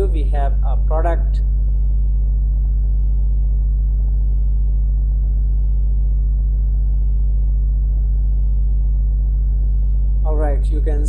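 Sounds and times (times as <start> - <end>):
loud steady low hum: 0.0 - 11.0.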